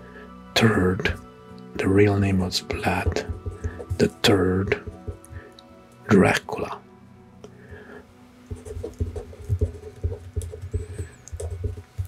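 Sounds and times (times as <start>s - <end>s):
marker pen scratching on paper: 2.7s - 5.4s, 8.5s - 12.0s.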